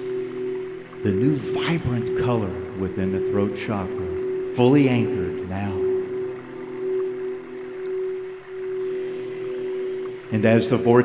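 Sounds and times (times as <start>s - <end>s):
crystal singing bowl ringing: 0.0s - 11.0s.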